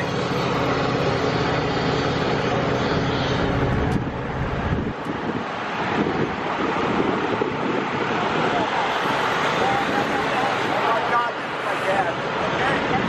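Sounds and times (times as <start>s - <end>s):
large engine running: 0.0s - 13.0s
rushing noise: 0.0s - 13.0s.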